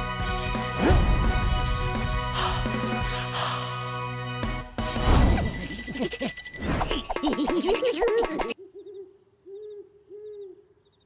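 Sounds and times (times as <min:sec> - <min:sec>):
owl hooting: 0:08.6 - 0:11.0.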